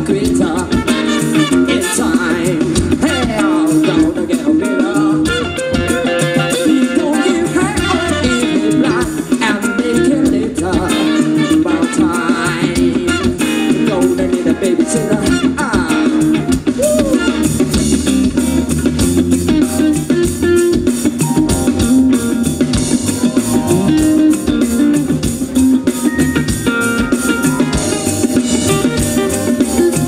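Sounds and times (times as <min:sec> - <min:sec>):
bass guitar: 0:00.0 - 0:30.0
drum kit: 0:00.0 - 0:30.0
electric guitar: 0:00.0 - 0:30.0
funk band playing: 0:00.0 - 0:30.0.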